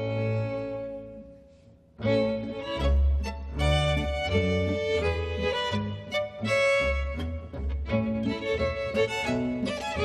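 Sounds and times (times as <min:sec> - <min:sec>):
folk string ensemble playing: 0:00.0 - 0:10.0.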